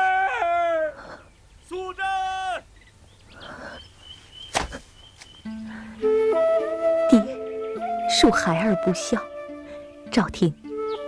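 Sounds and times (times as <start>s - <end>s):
men shouting a name: 1.6s - 2.7s
soft music with low held note: 5.4s - 11.0s.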